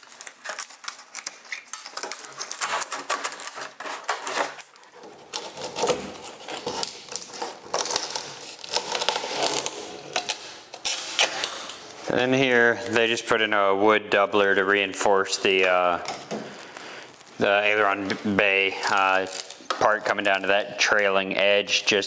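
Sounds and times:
fabric being cut and torn: 0:00.0 - 0:11.8.

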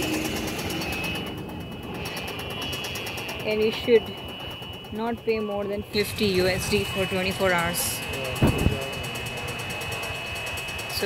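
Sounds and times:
golf cart driving: 0:00.0 - 0:11.0
steady high whine: 0:00.0 - 0:11.0.

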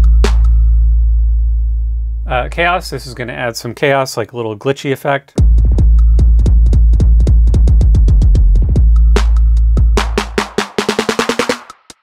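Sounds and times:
deep bass kick: 0:00.0 - 0:03.0, 0:05.4 - 0:10.6
stuttering drum machine roll: 0:05.4 - 0:12.0.

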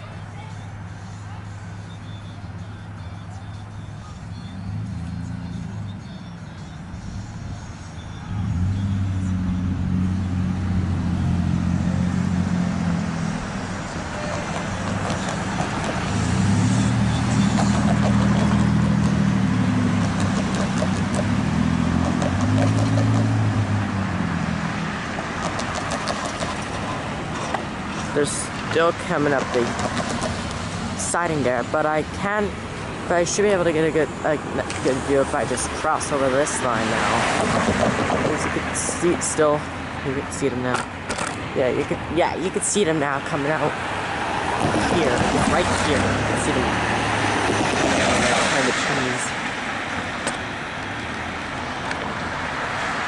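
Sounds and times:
diesel locomotive engine drone: 0:00.0 - 0:53.0.

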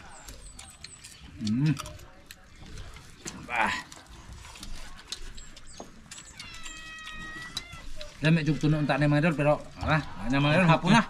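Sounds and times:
clicks and taps of eating: 0:00.0 - 0:10.8
cat meowing: 0:06.3 - 0:08.0.

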